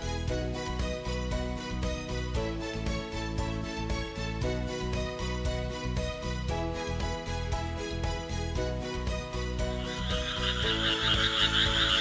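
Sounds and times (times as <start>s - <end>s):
soft background music: 0.0s - 12.0s
toad high-pitched trill: 9.6s - 12.0s.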